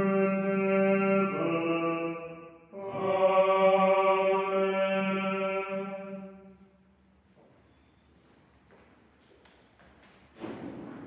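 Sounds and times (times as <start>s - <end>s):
plainchant singing: 0.0s - 6.8s.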